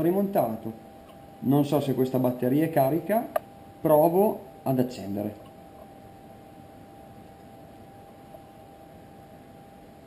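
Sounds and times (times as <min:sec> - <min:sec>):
faint high whine: 0:00.0 - 0:10.0
room tone hiss: 0:00.0 - 0:10.0.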